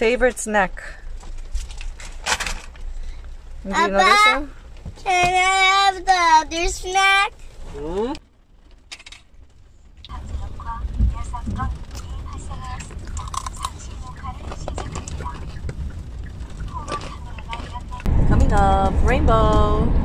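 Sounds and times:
car rumble: 0:00.0 - 0:20.0
snack bag crinkling: 0:12.8 - 0:15.7.

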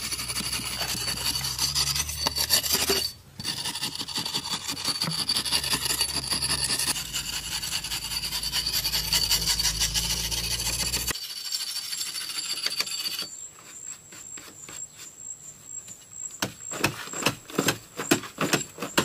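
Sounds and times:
steel scraper rasping on stone: 0:00.0 - 0:13.5.

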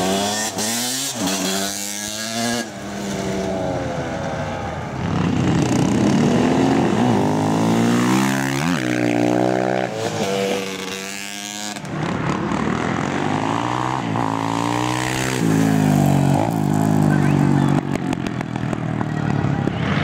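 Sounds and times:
off-road motorcycle engines passing: 0:00.0 - 0:20.0.

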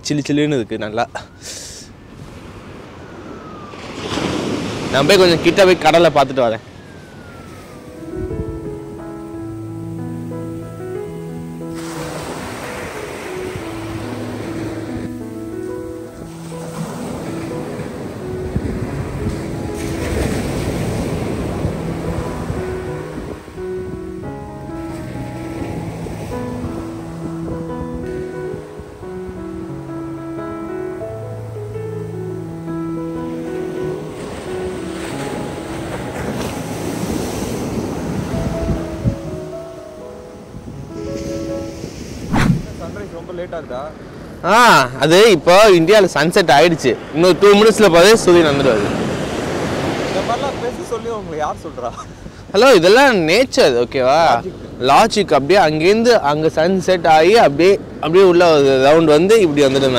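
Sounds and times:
surf breaking on beach: 0:02.2 - 0:06.7, 0:11.6 - 0:23.8, 0:40.9 - 0:43.4, 0:45.1 - 0:51.2
soft music with held notes: 0:06.8 - 0:42.3.

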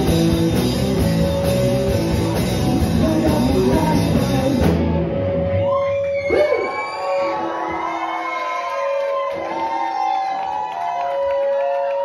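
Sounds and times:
live rock band: 0:00.0 - 0:07.8
audience cheering and whooping: 0:05.4 - 0:12.0.

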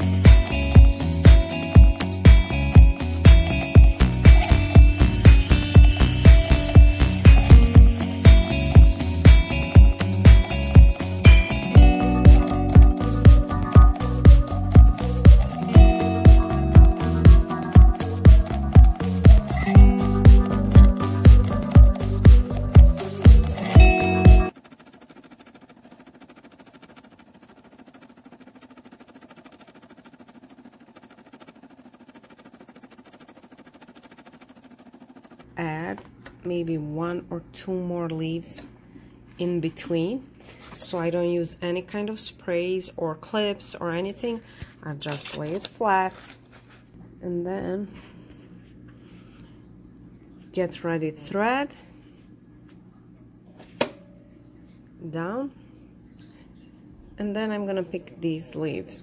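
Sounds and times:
background music: 0:00.0 - 0:24.5
low steady hum: 0:00.0 - 0:59.0
embroidery machine stitching: 0:03.4 - 0:35.9.

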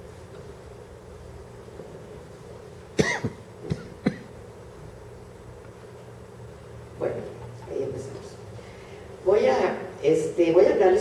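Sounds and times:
low steady room noise: 0:00.0 - 0:11.0
person coughing: 0:03.0 - 0:04.3.

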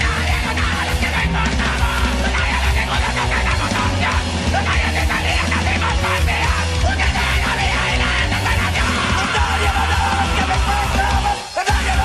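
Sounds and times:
loud rock music: 0:00.0 - 0:12.0
shouted vocals: 0:00.0 - 0:12.0.

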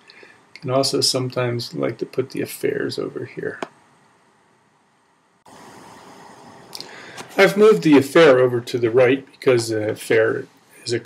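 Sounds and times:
faint microphone hiss: 0:00.0 - 0:11.0.

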